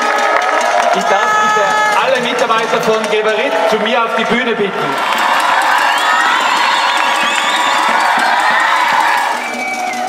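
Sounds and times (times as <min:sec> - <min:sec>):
large crowd cheering and shouting: 0:00.0 - 0:10.0.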